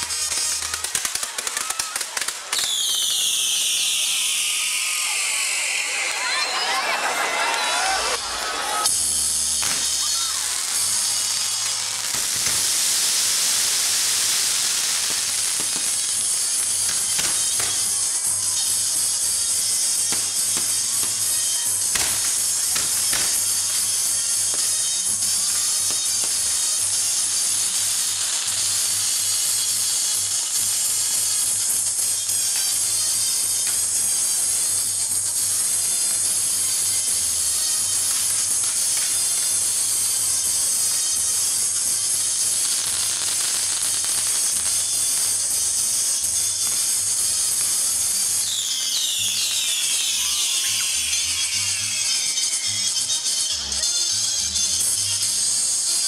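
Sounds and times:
fireworks hissing and crackling: 0.0s - 56.0s
music: 0.0s - 56.0s
firework whistles falling in pitch: 0.1s - 56.0s.

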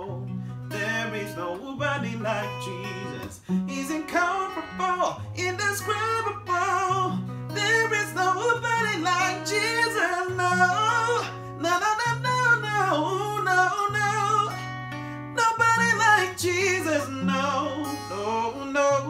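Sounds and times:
acoustic guitar chords: 0.0s - 19.0s
man singing: 0.0s - 19.0s.

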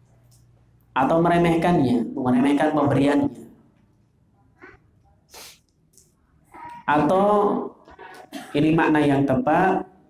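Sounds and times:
sharp intake of breath: 5.3s - 5.6s.

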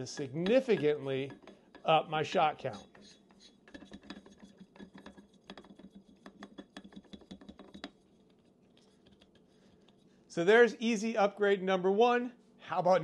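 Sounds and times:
air cylinder screwing clicks: 0.4s - 1.9s.

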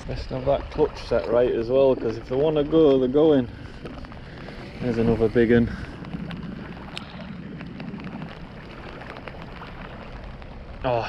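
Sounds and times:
rain drops ticking on camera: 0.0s - 11.0s
wind noise on microphone: 0.0s - 11.0s.

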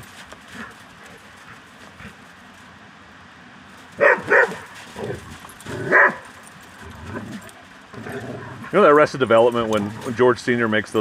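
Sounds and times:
dogs play-fighting: 0.0s - 2.7s, 3.8s - 8.8s, 9.5s - 10.2s
dog barking: 4.0s - 4.7s, 5.8s - 6.3s.

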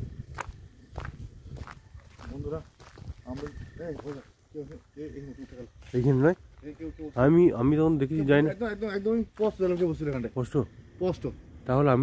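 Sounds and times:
footsteps on dirt path: 0.0s - 10.4s.

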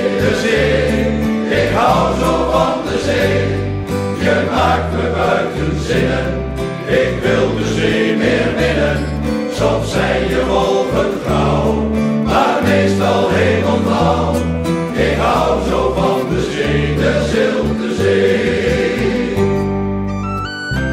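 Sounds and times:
choir singing: 0.0s - 19.9s
instrumental backing music: 0.0s - 20.9s.

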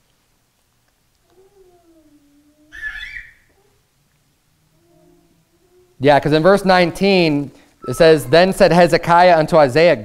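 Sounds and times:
faint high-pitched voice-like tone: 1.2s - 3.9s, 4.7s - 6.0s.

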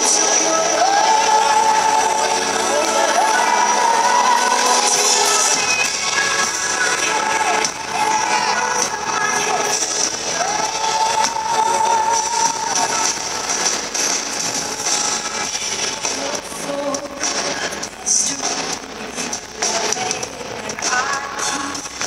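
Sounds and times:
live amplified pop band: 0.0s - 22.0s.

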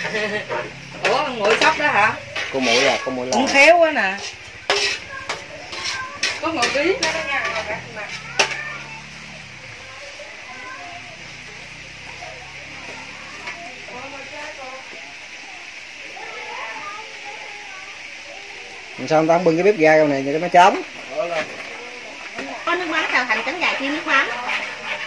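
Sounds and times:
background conversation: 0.0s - 25.0s
steady hiss: 0.0s - 25.0s.

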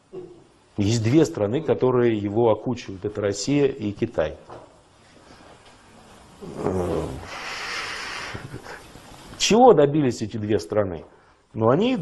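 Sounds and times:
breathy hissing: 6.3s - 9.4s.

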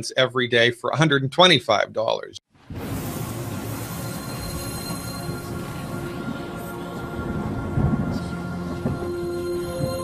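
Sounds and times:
sharp hit: 2.6s - 8.6s
deep thunder-like rumble: 2.6s - 9.2s
steady synth tones: 2.6s - 10.0s.

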